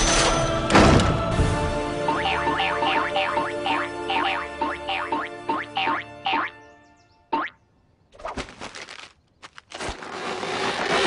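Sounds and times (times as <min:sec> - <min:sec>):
rustling: 0:08.2 - 0:11.0.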